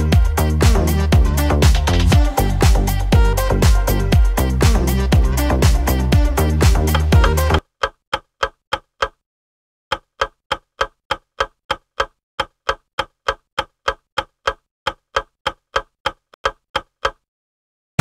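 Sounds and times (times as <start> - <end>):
dance music: 0.0 - 7.6
clock ticking: 0.0 - 9.2, 9.9 - 17.3.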